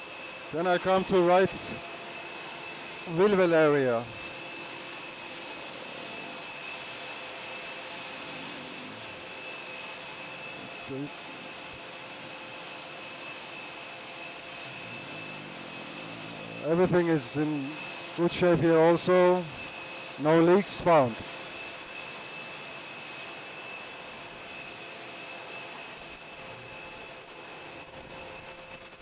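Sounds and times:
jet turbine whine: 0.0 - 29.0.

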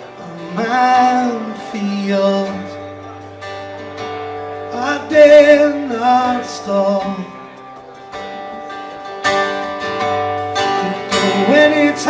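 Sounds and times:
strummed acoustic guitar chords: 0.0 - 12.0.

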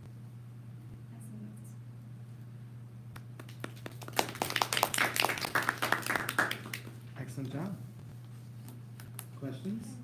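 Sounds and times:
audience clapping: 3.2 - 7.6.

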